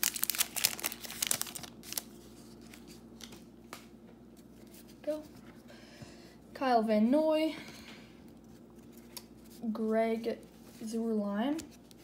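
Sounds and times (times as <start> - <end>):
foil wrapper crinkling and tearing: 0.0 - 2.9.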